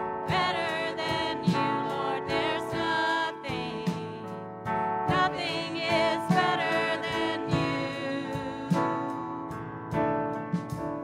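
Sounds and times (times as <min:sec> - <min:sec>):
singers with a band: 0:00.2 - 0:04.4, 0:05.1 - 0:09.4.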